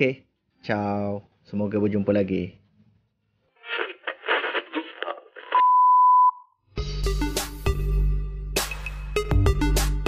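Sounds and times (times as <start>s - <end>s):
crackly radio-like bursts: 3.6s - 5.6s.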